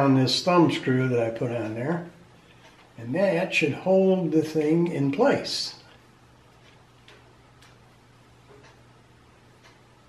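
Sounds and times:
low steady hum: 0.0s - 10.0s
faint ticks: 9.6s - 9.9s.

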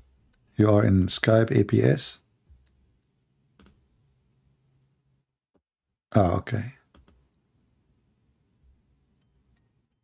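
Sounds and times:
person speaking: 6.1s - 6.9s.

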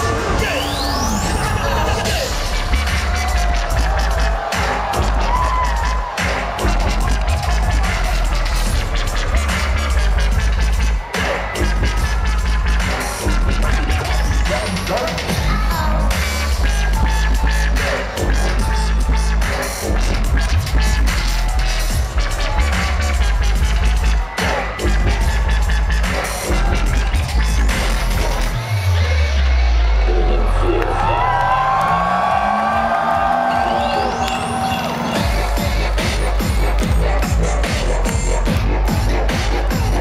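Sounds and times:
dubstep over sound system: 0.0s - 31.3s, 33.3s - 40.0s
deep bass sweep: 0.0s - 40.0s.

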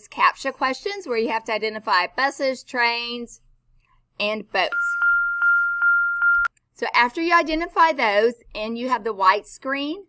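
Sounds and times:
steady high-pitched tone: 4.7s - 6.5s.

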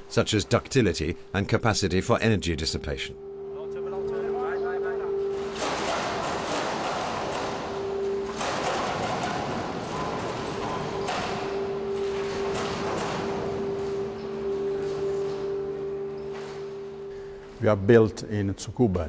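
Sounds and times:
machinery hum: 0.0s - 19.0s
building rattling and knocking: 5.0s - 17.2s.

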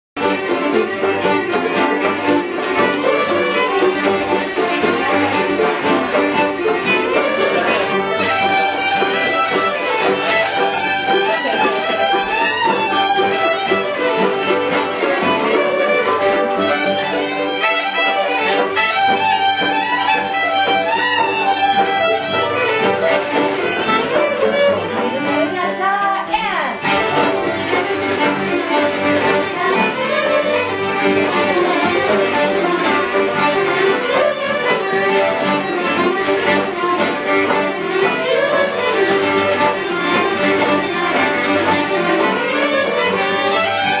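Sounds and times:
fiddles playing in unison: 0.2s - 44.0s
strummed guitar: 0.2s - 44.0s.

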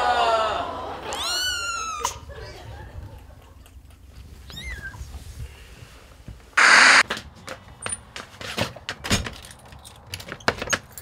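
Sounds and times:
loud burst of hiss: 6.6s - 7.0s.

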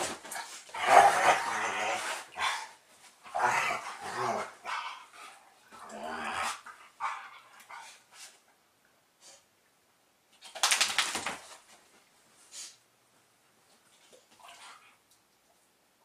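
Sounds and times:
dogs growling and barking: 0.7s - 8.0s.

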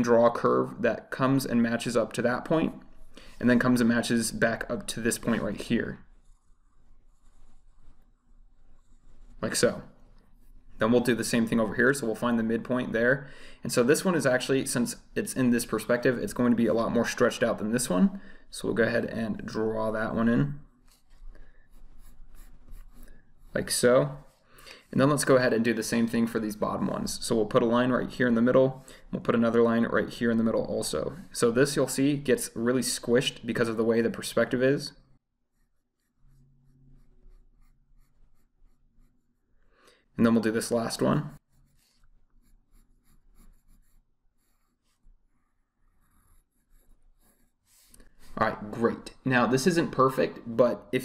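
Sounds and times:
pencil scratching on paper: 5.2s - 9.5s, 20.8s - 25.7s, 35.5s - 39.6s, 40.6s - 48.4s.

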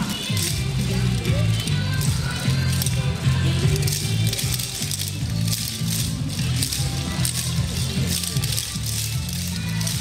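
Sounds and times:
wooden clappers clacking: 0.0s - 10.0s.

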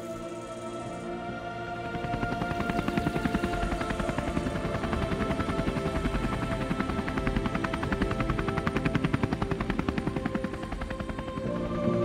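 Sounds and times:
helicopter rotor chop: 0.1s - 12.0s.

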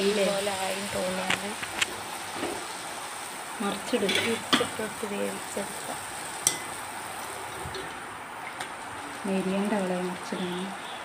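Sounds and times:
batter sizzling in hot oil: 0.0s - 11.0s.

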